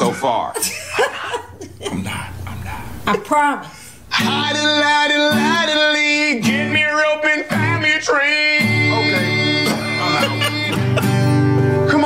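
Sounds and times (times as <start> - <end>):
acoustic guitar strumming country tune: 4.1 - 12.0.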